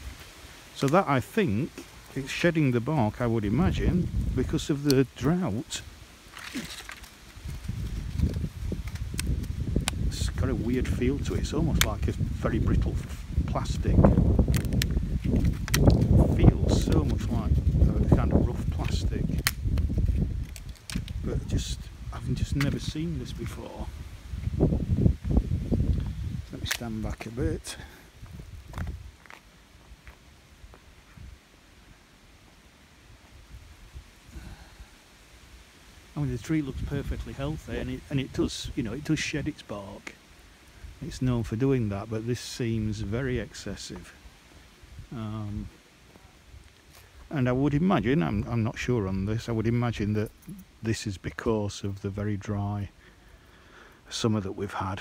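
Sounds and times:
dry bark and leaves crackling: 0.0 - 31.1, 31.7 - 52.3
faint outdoor background: 0.0 - 55.0
microphone handling rumble: 0.9 - 29.4, 36.2 - 40.1
footsteps on dry leaves: 5.9 - 10.1, 23.5 - 31.2.

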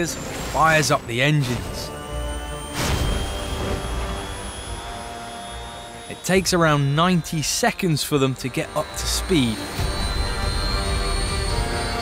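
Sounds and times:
small jet engines spooling up: 0.0 - 12.0.

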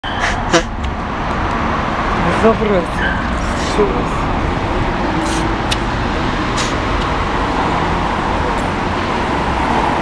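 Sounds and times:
city road traffic: 0.0 - 10.0.

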